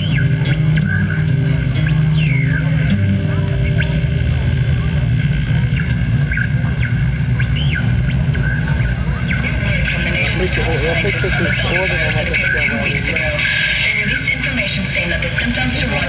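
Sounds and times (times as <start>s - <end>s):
low drone from speakers: 0.0s - 16.0s.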